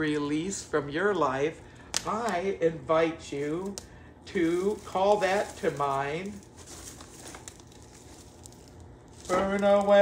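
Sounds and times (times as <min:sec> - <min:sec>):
wood fire crackling: 0:00.0 - 0:10.0
dry twigs rustling: 0:03.3 - 0:10.0.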